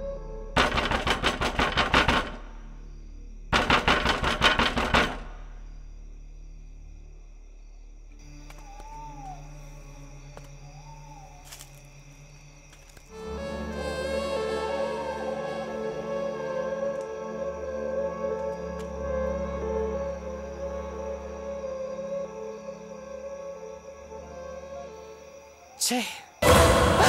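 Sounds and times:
rapid rattling knocks: 0:00.6 - 0:02.6, 0:03.5 - 0:05.4
ambient horror score: 0:05.5 - 0:25.7, 0:26.3 - 0:27.0.

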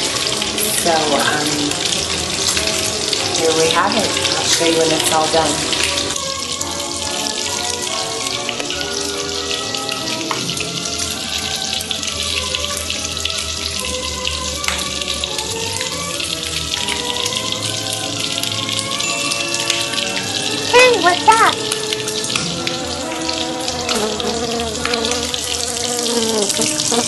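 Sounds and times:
background music: 0:00.0 - 0:27.0
bacon sizzling in a frying pan: 0:00.0 - 0:27.0.

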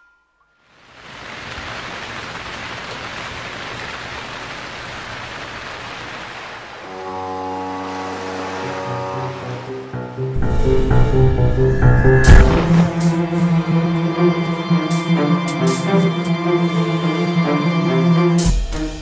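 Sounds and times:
rain rushing: 0:00.7 - 0:11.2
held musical chord: 0:06.9 - 0:18.4
low bass notes: 0:08.8 - 0:14.8.

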